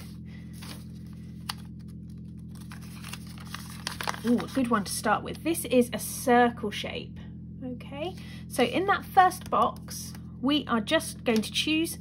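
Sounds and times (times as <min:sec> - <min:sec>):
paper crackling: 0:00.0 - 0:04.8
low hum: 0:00.0 - 0:12.0.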